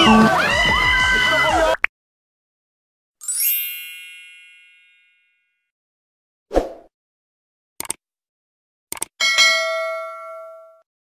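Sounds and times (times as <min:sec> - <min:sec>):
high-pitched chime: 0:03.2 - 0:05.6.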